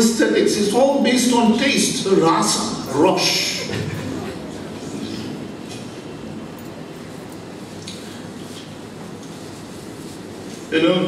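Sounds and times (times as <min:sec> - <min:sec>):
low rumbling hall noise: 0:00.0 - 0:11.0.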